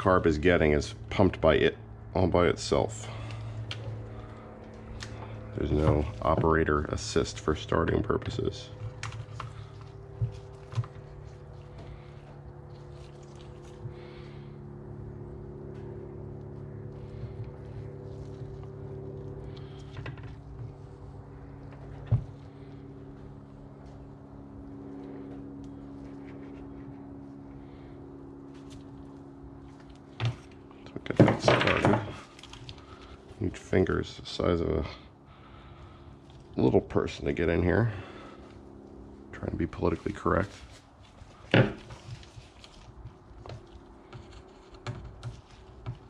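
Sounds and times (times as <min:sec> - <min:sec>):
steady background hum: 0:00.0 - 0:46.0.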